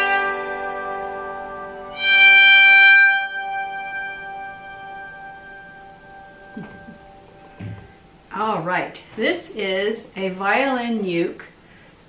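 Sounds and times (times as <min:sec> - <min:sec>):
bowed zither strings ringing: 0:00.0 - 0:08.0.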